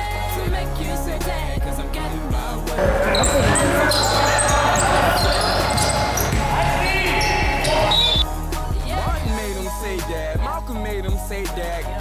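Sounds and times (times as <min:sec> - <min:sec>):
background music: 0:00.0 - 0:12.0
players' voices: 0:02.4 - 0:08.2
basketball bouncing on hardwood: 0:04.7 - 0:06.7.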